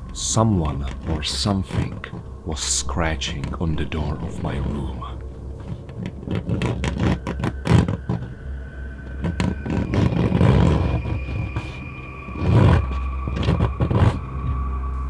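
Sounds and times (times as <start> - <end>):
low droning music: 0.0 - 15.0
scratching on a door: 0.2 - 14.7.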